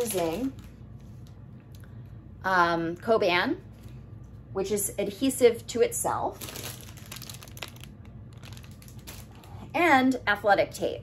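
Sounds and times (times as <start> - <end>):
wrapping rustling and crinkling: 0.0 - 1.4, 6.3 - 9.7.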